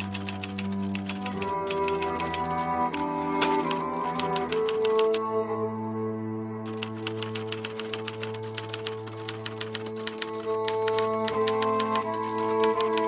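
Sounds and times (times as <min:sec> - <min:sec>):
typewriter key clicks: 0:00.0 - 0:05.3, 0:06.6 - 0:13.0
slow background music: 0:00.0 - 0:13.0.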